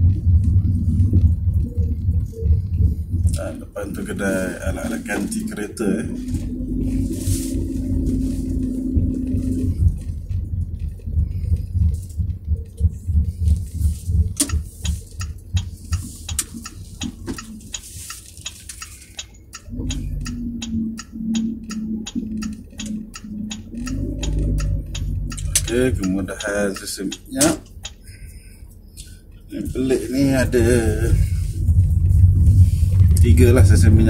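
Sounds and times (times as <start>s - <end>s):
low drone: 0.0s - 15.9s, 19.6s - 26.4s, 29.1s - 34.0s
car engine and road hum: 0.0s - 34.0s.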